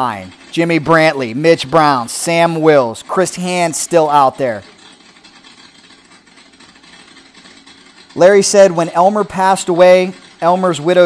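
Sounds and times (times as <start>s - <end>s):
drag motorcycle engine running: 0.0s - 11.0s.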